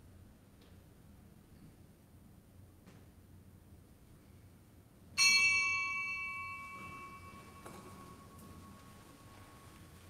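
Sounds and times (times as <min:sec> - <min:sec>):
small bell ringing: 0:05.2 - 0:09.8.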